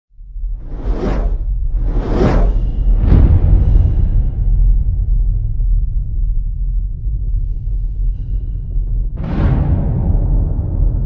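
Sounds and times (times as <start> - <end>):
deep low rumble: 0.2 - 11.0
cinematic whoosh: 0.5 - 5.6.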